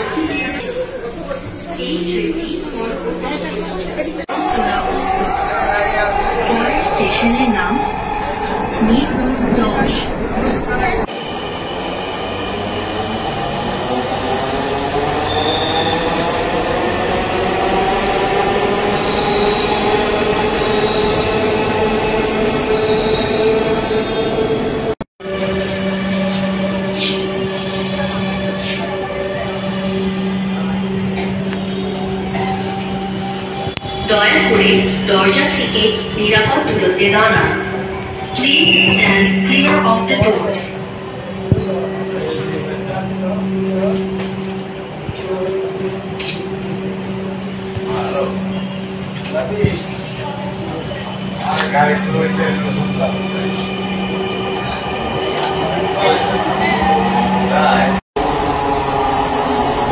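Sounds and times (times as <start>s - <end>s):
passengers' voices: 0.0s - 25.0s, 26.4s - 59.9s
high whine of moving train: 0.0s - 59.9s.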